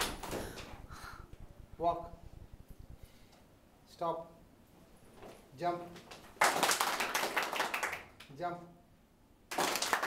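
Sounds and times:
people clapping: 0:06.0 - 0:08.3, 0:09.5 - 0:10.0.

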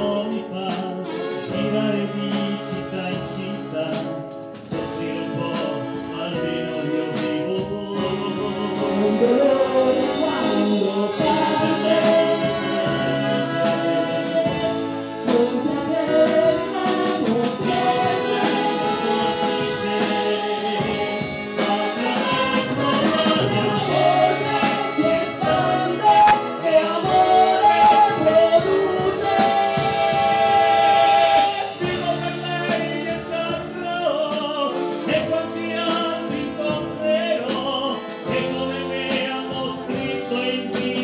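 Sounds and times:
instrumental accompaniment: 0:00.0 - 0:41.0
man and woman singing duet: 0:00.0 - 0:41.0.

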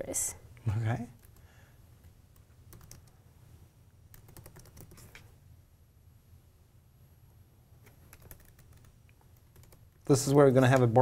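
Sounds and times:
faint keyboard typing: 0:01.1 - 0:01.5, 0:02.3 - 0:03.2, 0:04.1 - 0:05.3, 0:07.8 - 0:11.0.

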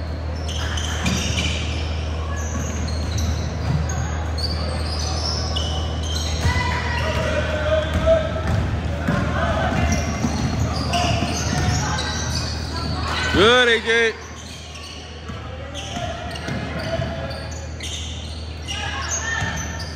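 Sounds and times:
sneaker squeaks: 0:00.0 - 0:19.9
voices calling out: 0:00.4 - 0:19.9
basketball bouncing: 0:06.4 - 0:11.8.

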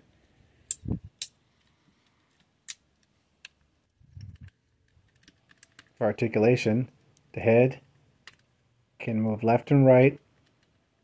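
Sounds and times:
action figure parts clicking: 0:04.2 - 0:06.0, 0:08.2 - 0:08.6.

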